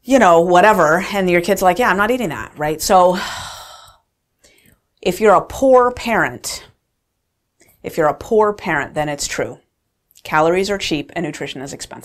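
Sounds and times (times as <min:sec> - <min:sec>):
woman speaking: 0:00.0 - 0:03.8, 0:05.0 - 0:06.8, 0:07.8 - 0:09.6, 0:10.2 - 0:12.0
woman's breathy sigh: 0:03.1 - 0:04.8.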